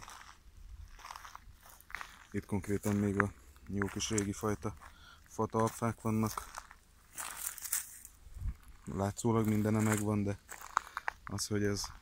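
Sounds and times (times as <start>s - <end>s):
footsteps crunching on gravel: 0.0s - 12.0s.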